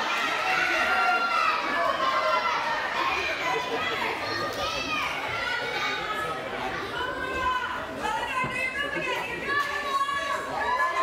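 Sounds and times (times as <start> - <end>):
children's voices: 0.0 - 11.0
crowd chatter: 0.0 - 11.0.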